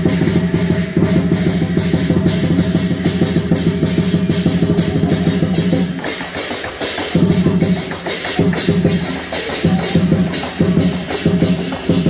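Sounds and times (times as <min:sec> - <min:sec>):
cymbals clashing: 0:00.0 - 0:12.0
drum beating fast rhythm: 0:00.0 - 0:12.0.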